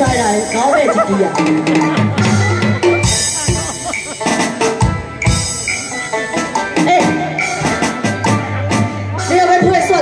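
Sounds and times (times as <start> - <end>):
drum strikes: 0.0 - 5.9
opera ensemble held melodic notes: 0.0 - 10.0.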